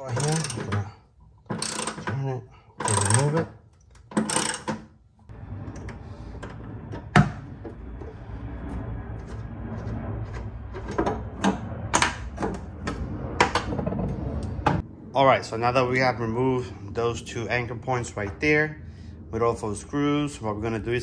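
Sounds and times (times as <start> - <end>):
ratchet wrench clicking: 0.0 - 0.8, 1.6 - 2.0, 2.8 - 3.4, 4.2 - 4.7
low rumble: 5.1 - 21.0.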